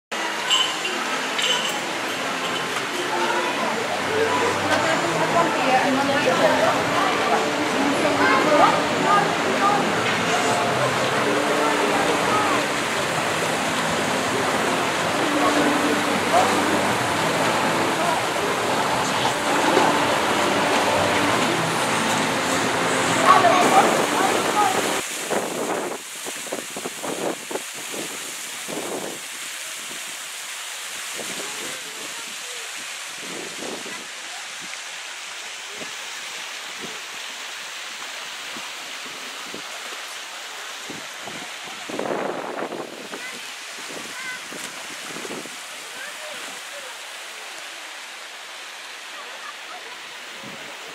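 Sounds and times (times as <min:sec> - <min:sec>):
background chatter: 0:00.1 - 0:25.0, 0:48.7 - 0:50.9
fountain water splashing: 0:00.1 - 0:50.9.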